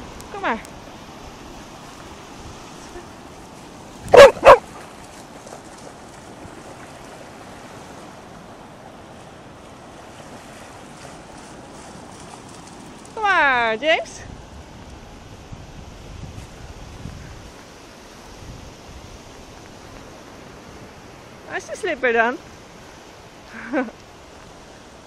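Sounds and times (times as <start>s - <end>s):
dog barking: 4.1s - 4.7s.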